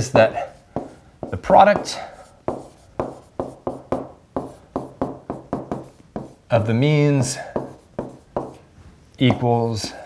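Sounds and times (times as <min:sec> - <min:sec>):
stylus tapping on tablet screen: 0:00.8 - 0:06.4.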